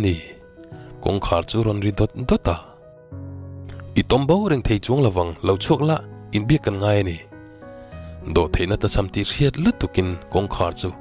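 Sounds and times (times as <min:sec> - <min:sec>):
soft background music: 0:00.0 - 0:11.0
person narrating: 0:01.0 - 0:02.8, 0:03.7 - 0:07.3.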